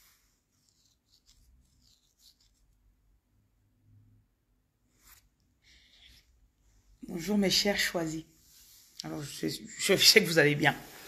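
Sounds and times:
faint scratchy rustles: 4.8 - 11.0.

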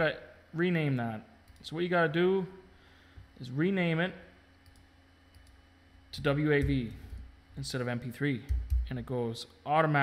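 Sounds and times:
computer keys clicking: 8.5 - 8.9.

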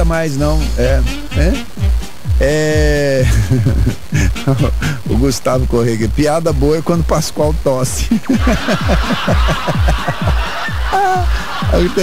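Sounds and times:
radio static hiss: 0.0 - 12.0
person chuckling: 3.1 - 5.0, 8.0 - 12.0.

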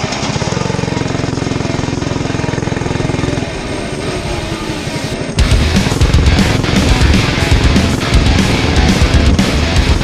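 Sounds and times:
small engine at high revs: 0.0 - 10.0.

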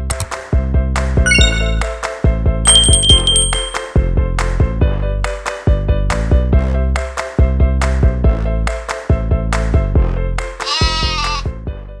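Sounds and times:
cartoon sheep bleat: 10.6 - 11.5.

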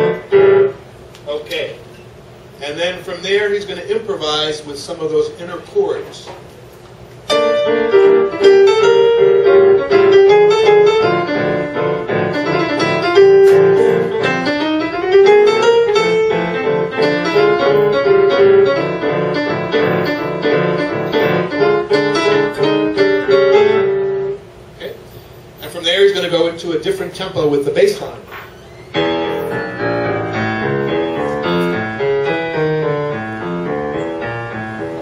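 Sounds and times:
jazz piano playing: 0.0 - 1.1, 7.2 - 25.0, 28.8 - 35.0.

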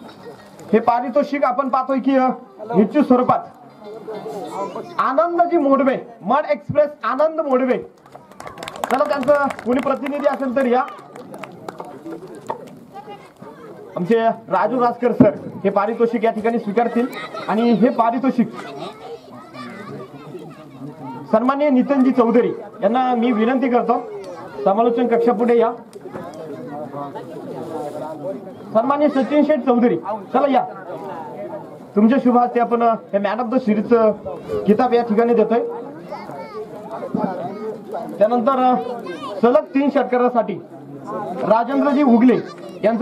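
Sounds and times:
crowd chatter: 0.0 - 43.0
children's voices: 4.2 - 5.0, 12.9 - 14.1, 16.9 - 21.4, 22.4 - 27.3, 35.8 - 38.0, 38.7 - 39.8, 42.0 - 43.0
men talking: 8.8 - 12.4, 14.0 - 18.9, 20.9 - 27.3, 28.0 - 43.0.

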